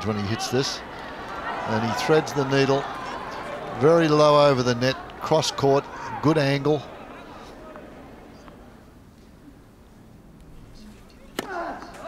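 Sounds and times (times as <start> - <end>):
faint stadium crowd noise: 0.0 - 12.0.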